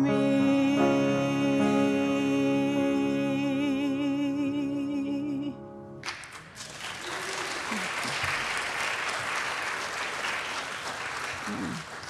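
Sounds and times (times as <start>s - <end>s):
congregation applauding: 6.0s - 12.0s.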